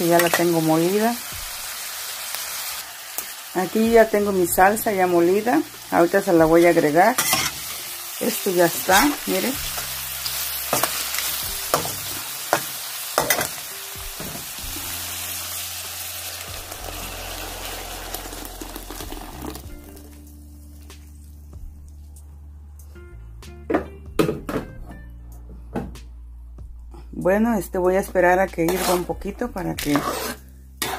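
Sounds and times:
onions sizzling in hot oil: 0.0 - 20.3.

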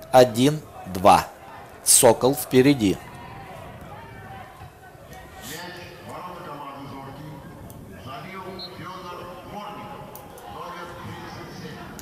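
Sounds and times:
faint voices calling out: 0.0 - 12.0.

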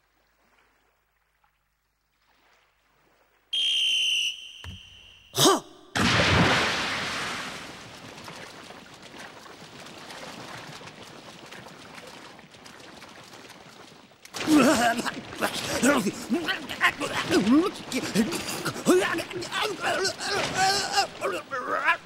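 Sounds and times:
whistle blowing: 3.5 - 5.4
swimmer diving into pool: 6.0 - 8.5, 14.3 - 22.0
splashing of fast swimming: 6.0 - 22.0.

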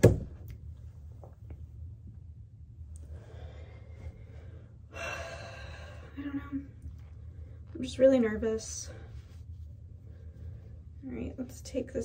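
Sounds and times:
low steady hum: 0.0 - 12.0
woman sighing: 4.9 - 6.6.

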